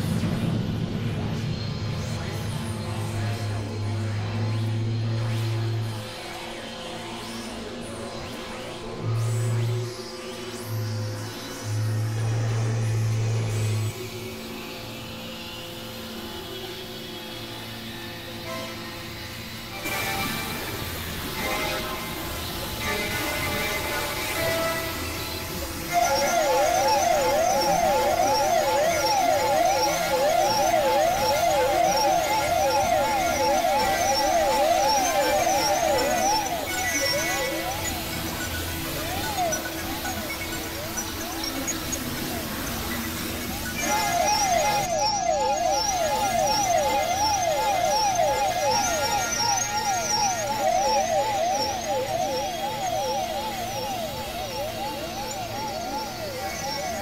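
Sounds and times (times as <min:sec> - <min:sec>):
siren-like warbling: 0:19.8 - 0:57.0.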